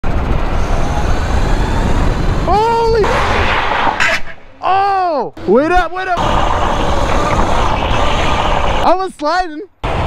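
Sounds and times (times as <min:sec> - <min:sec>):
road rumble: 0:00.0 - 0:08.9
brief rising and falling tone: 0:00.6 - 0:05.5.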